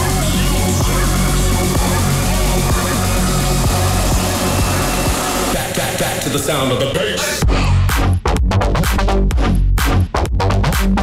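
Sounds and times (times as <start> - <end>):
bass-heavy electronic dance music: 0.0 - 11.0.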